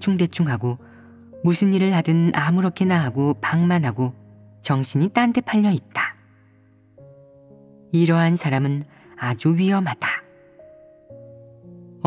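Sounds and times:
person narrating: 0:00.0 - 0:00.8, 0:01.4 - 0:06.2, 0:07.9 - 0:10.4
soft background music: 0:00.0 - 0:12.0.

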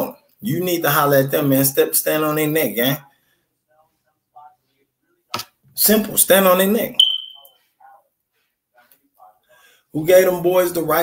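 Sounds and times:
short high-pitched beep: 0:07.0 - 0:07.5.

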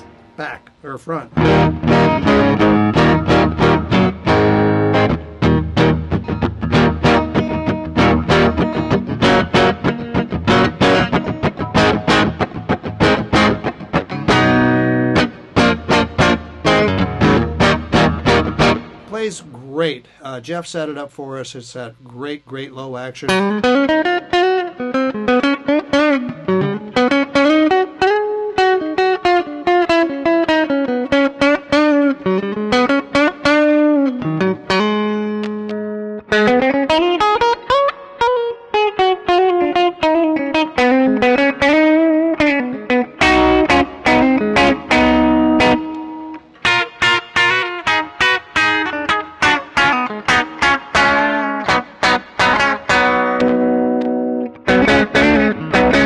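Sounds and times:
clean electric guitar: 0:00.0 - 0:20.2, 0:23.2 - 0:56.0.

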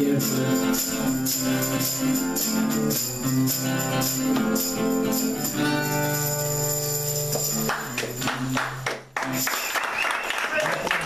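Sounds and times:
audience clapping: 0:07.5 - 0:11.0.

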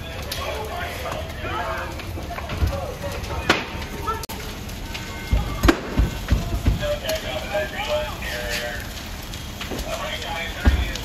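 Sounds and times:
structure fire burning: 0:00.0 - 0:11.0
sharp pops and thumps: 0:05.2 - 0:07.3, 0:10.6 - 0:11.0.

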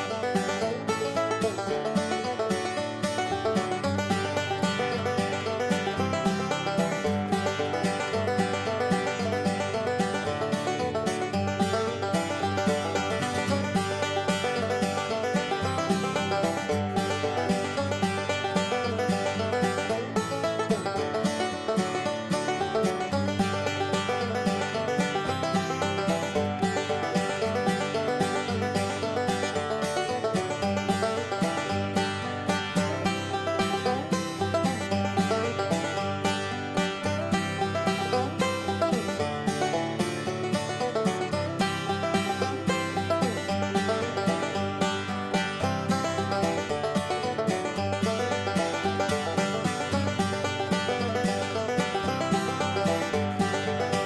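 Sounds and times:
fast plucked-string picking music: 0:00.0 - 0:54.0.

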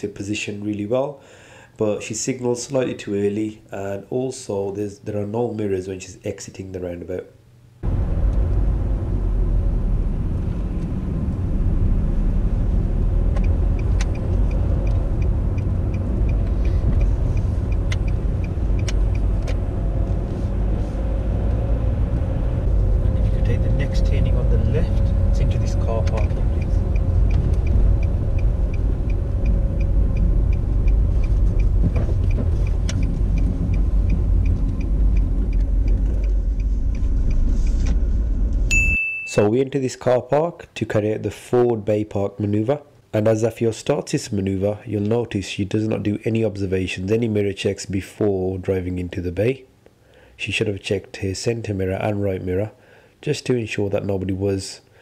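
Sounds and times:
car engine and road noise: 0:07.8 - 0:39.0
indicator ticking: 0:13.3 - 0:19.3, 0:26.0 - 0:37.4.

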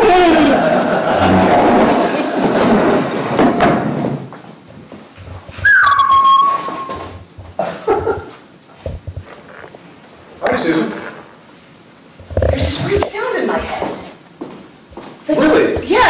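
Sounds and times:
audience laughter: 0:00.2 - 0:03.3
high squeal sliding down: 0:05.6 - 0:07.2.

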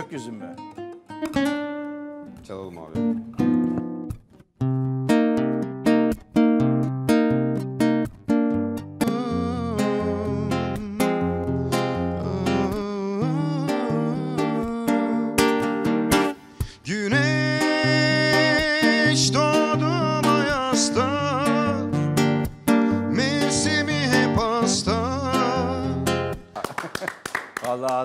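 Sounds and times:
acoustic guitar strumming: 0:00.0 - 0:26.6
man singing: 0:09.0 - 0:15.8, 0:16.6 - 0:22.0, 0:22.9 - 0:26.4.

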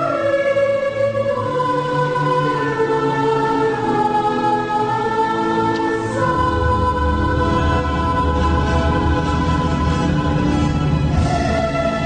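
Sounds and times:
choir singing long held notes: 0:00.0 - 0:12.0.

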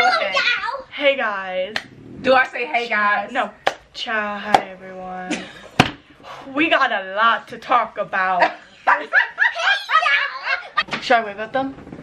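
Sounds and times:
girls laughing: 0:08.4 - 0:10.9.

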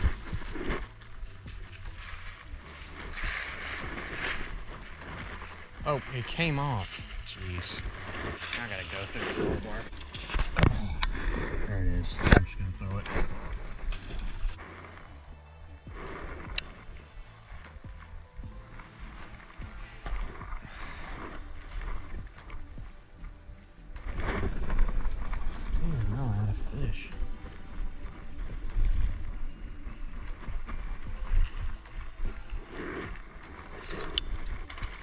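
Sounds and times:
footsteps crunching through dry leaves: 0:00.0 - 0:10.4
music: 0:00.0 - 0:35.0.

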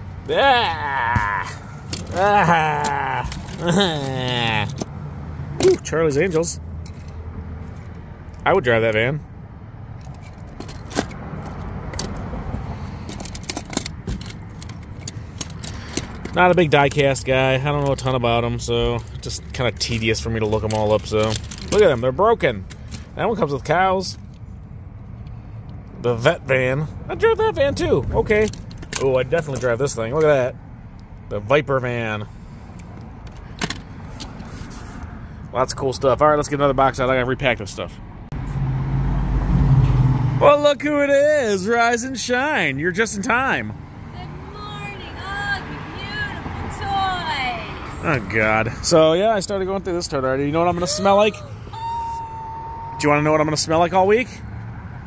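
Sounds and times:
metal toy cars clinking and rattling: 0:01.8 - 0:04.9, 0:05.6 - 0:08.0, 0:10.0 - 0:12.2, 0:12.9 - 0:18.3, 0:19.0 - 0:23.2.

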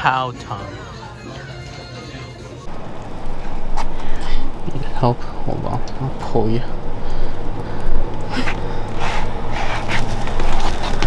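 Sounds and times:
faint background music: 0:00.0 - 0:06.8
wind buffeting microphone: 0:02.7 - 0:11.0.

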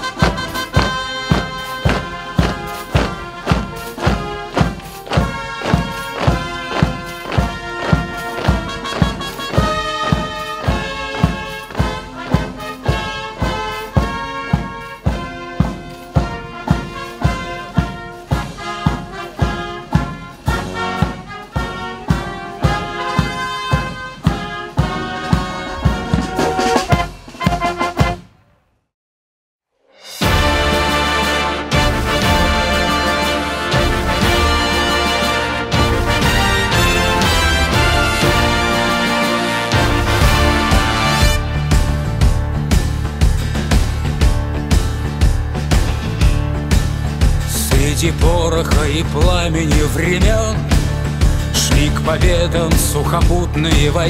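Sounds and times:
steady drum beat: 0:00.0 - 0:28.3, 0:30.1 - 0:54.0
brass band playing a march: 0:00.0 - 0:28.4, 0:30.2 - 0:54.0.

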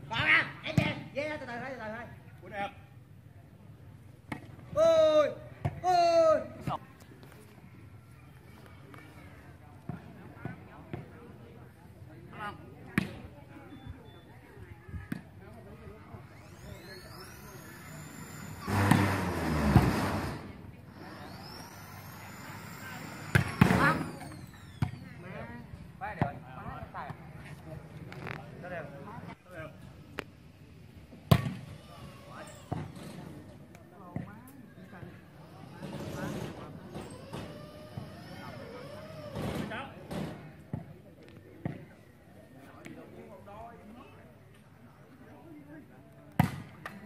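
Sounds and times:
spectators' voices: 0:04.6 - 0:47.0
loud burst of noise: 0:16.2 - 0:25.2, 0:35.3 - 0:40.4.

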